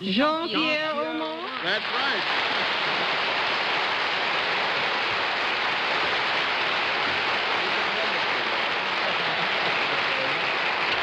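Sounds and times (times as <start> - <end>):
faint voices: 0.0 - 3.3, 6.9 - 11.0
audience applauding: 1.1 - 11.0.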